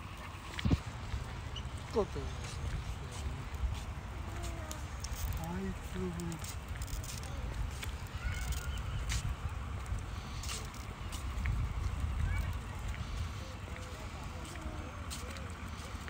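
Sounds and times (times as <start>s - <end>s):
distant people talking: 0.0s - 16.0s.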